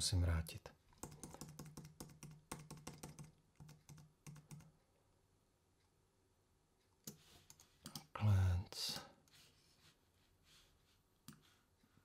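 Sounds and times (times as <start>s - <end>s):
keyboard typing: 1.0s - 4.8s
soft noise: 9.0s - 12.0s.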